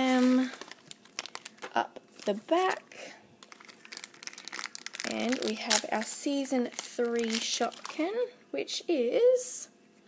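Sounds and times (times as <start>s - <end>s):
plastic bag crinkling: 0.0s - 8.2s.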